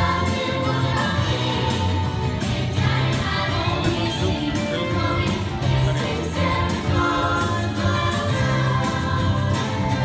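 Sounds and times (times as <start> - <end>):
girls' choir singing: 0.0 - 10.0.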